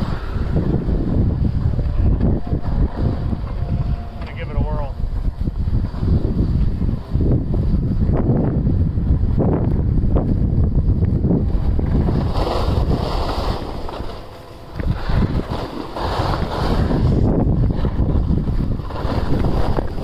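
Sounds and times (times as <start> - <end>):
wind buffeting microphone: 0.0 - 20.0
ski edges scraping snow: 11.6 - 20.0.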